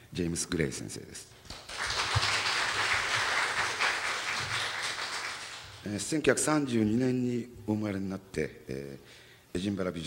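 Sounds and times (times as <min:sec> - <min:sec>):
audience applauding: 0:01.5 - 0:05.9.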